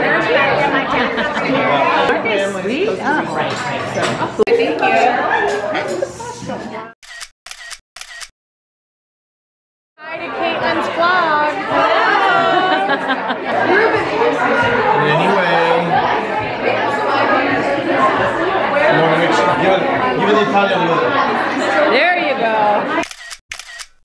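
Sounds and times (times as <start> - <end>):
people chattering: 0.0 - 7.0, 10.0 - 23.4
sharp clicks: 7.0 - 8.3, 23.0 - 24.0.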